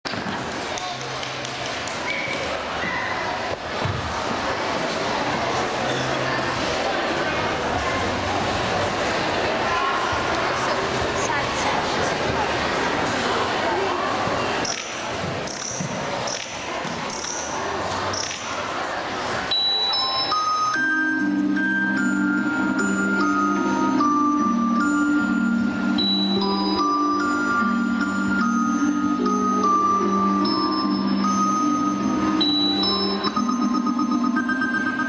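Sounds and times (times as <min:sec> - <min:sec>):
crowd murmur: 0:00.0 - 0:35.0.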